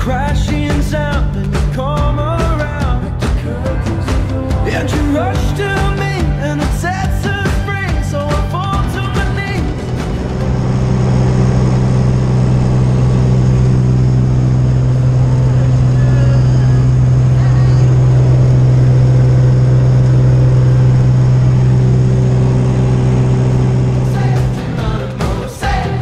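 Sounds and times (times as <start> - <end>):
aircraft engine and propeller droning: 4.0 - 26.0.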